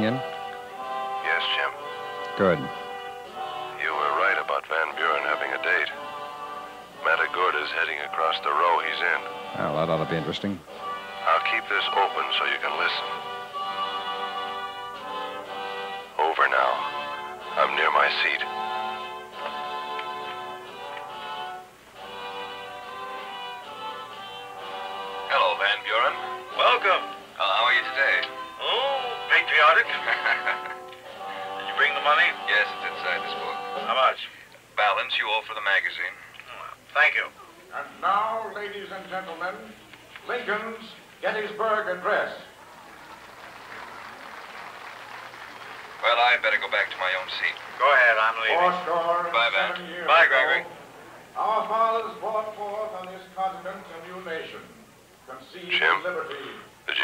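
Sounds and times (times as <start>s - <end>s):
violins playing long notes: 0.0s - 34.0s
light audience applause: 42.5s - 49.9s.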